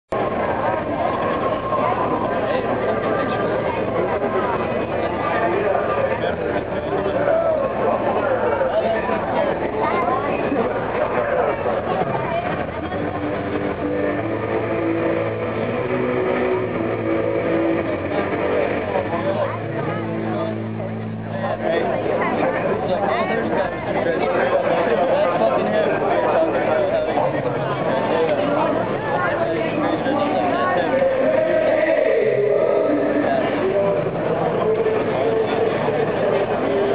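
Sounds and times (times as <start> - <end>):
crowd talking: 0.0 - 36.9
loud steady drone: 0.1 - 36.9
amplified music: 10.1 - 22.8.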